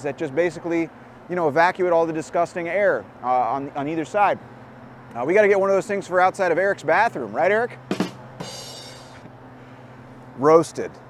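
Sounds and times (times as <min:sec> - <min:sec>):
cymbal ringing: 0:07.9 - 0:09.3
drum hits: 0:07.9 - 0:09.3.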